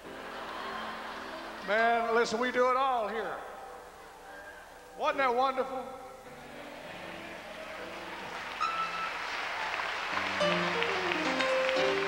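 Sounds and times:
congregation applauding: 0.1s - 2.2s, 6.4s - 12.0s.

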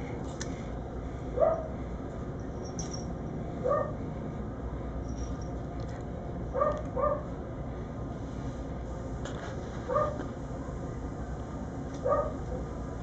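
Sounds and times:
steady background hum: 0.0s - 13.0s
dog barking: 1.4s - 1.7s, 3.6s - 4.0s, 6.6s - 7.3s, 9.9s - 10.2s, 12.0s - 12.4s.

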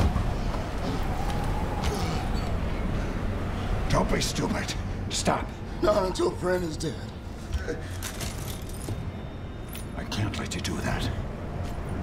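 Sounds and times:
train carriage rumble: 0.0s - 12.0s
light clinks and rattles: 7.8s - 10.6s.

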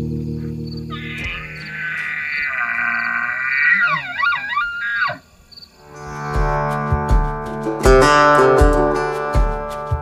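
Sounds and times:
elk bugling: 0.4s - 5.5s.

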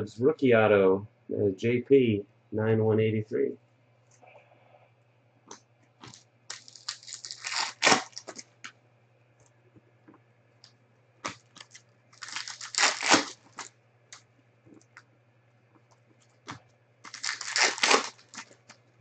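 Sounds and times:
crinkly plastic rustling: 6.0s - 8.5s, 11.2s - 13.7s, 17.0s - 18.9s.

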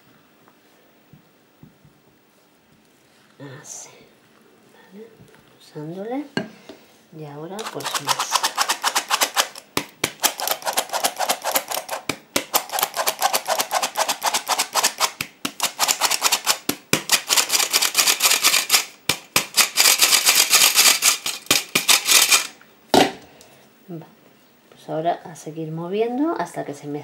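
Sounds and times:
flour sifter clicking: 7.6s - 22.6s.

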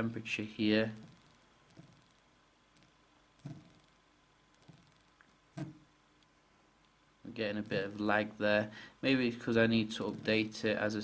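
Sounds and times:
fingertip tapping touchscreen: 0.9s - 5.8s, 10.0s - 10.6s.

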